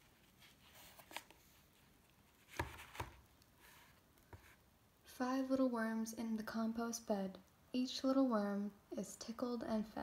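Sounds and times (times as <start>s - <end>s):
book pages rustling: 0.0s - 4.6s
soft thumps of a book: 2.4s - 4.6s.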